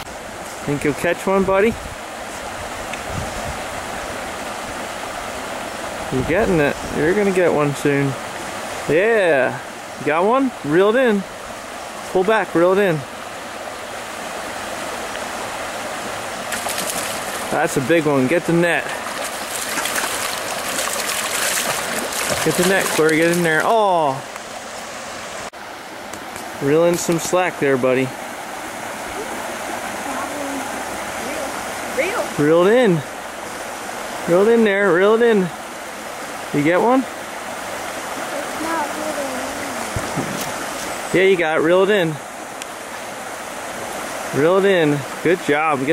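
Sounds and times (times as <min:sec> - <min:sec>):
creek water over rapids: 0:00.0 - 0:45.9
fish splashing at surface: 0:16.5 - 0:17.6, 0:18.9 - 0:23.5.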